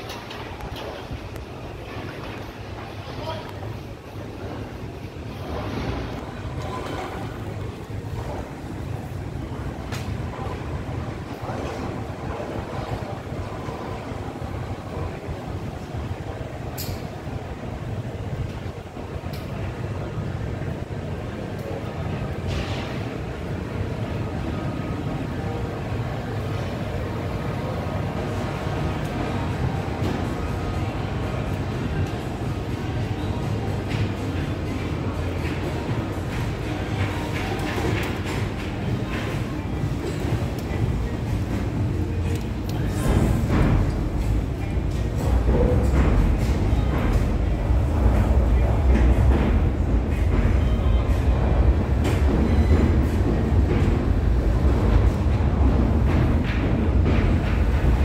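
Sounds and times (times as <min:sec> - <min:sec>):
low rumble of market hall: 0:00.0 - 0:58.0.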